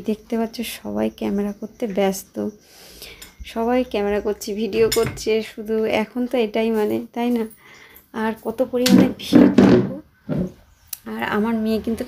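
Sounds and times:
woman talking: 0.0 - 2.6, 3.4 - 10.1, 11.0 - 12.0
light metallic clinks: 3.0 - 3.5.

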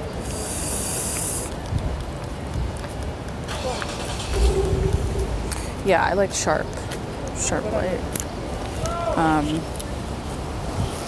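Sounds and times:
rumble of passing vehicles: 0.0 - 8.8.

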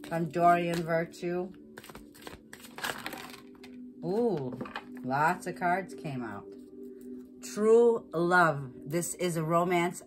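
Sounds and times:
cards being shuffled: 0.0 - 0.9, 1.7 - 3.8.

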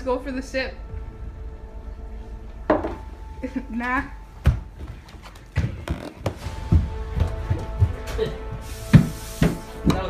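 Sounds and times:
hurried footsteps on floor: 4.3 - 10.0.

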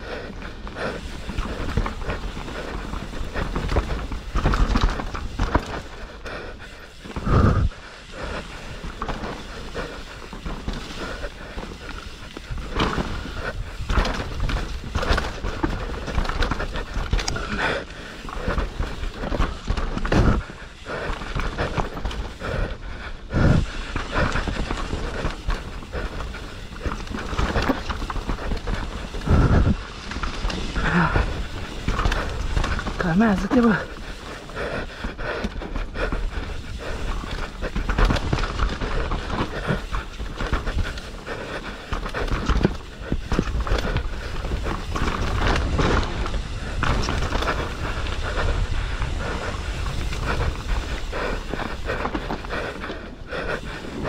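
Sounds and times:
mountain bike rattling over bumps: 0.0 - 54.0
rider breathing hard: 0.0 - 54.0.

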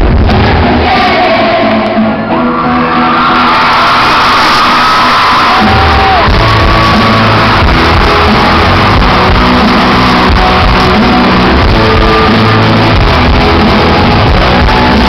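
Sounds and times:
heavy drums and bass: 0.0 - 1.0, 5.5 - 15.0
live pop-rock band: 0.0 - 15.0.

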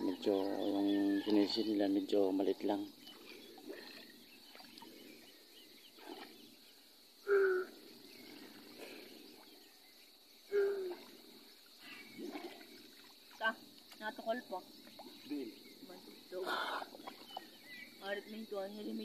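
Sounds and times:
faint outdoor background: 0.0 - 19.0.

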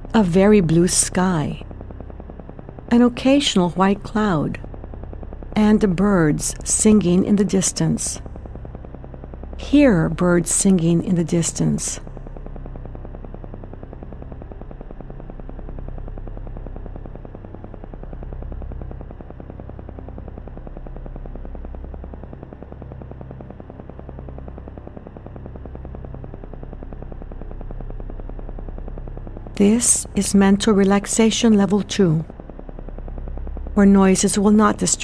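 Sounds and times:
low pulsing meditation hum: 0.0 - 35.0.

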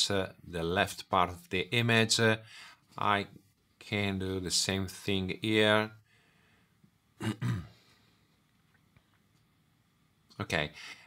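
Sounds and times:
man clearing his throat: 7.2 - 7.8.

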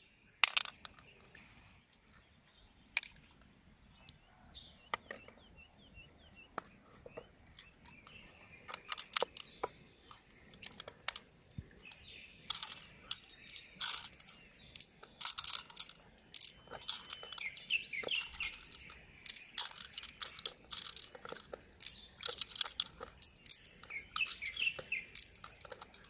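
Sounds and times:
bird chirping: 0.0 - 26.0
pearls clicking against shell: 0.4 - 1.2, 7.5 - 26.0.

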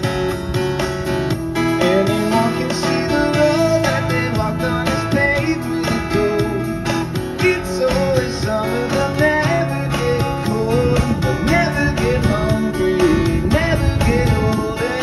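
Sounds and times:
acoustic guitar strummed: 0.0 - 15.0.

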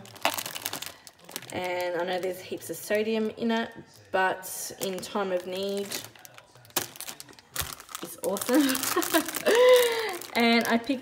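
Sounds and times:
plastic packaging crinkling: 0.0 - 3.0, 4.7 - 11.0.

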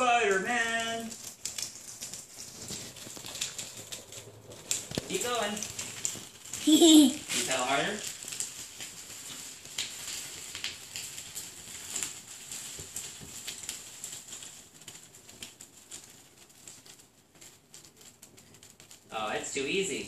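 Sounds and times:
small bicycle rattling on concrete: 0.0 - 20.0.

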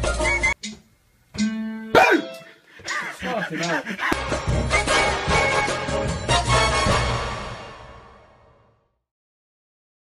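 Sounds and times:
backing music: 0.0 - 8.4.

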